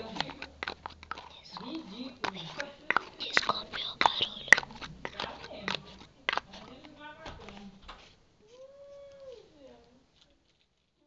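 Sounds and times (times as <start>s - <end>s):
wet mouth clicks: 0.2s - 6.5s
person whispering: 1.1s - 5.3s.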